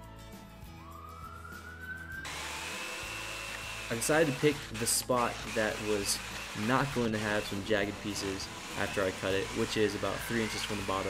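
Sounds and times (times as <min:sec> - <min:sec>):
jigsaw motor whine: 0:02.2 - 0:11.0
jigsaw cutting plastic: 0:02.3 - 0:11.0.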